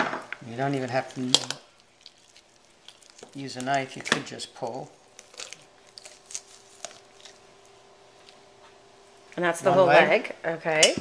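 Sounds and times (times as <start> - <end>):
raw chicken skin tearing: 1.0 - 8.4.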